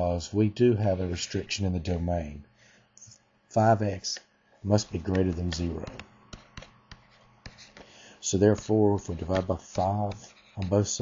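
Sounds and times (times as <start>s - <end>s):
stylus tapping on tablet screen: 5.0s - 7.9s.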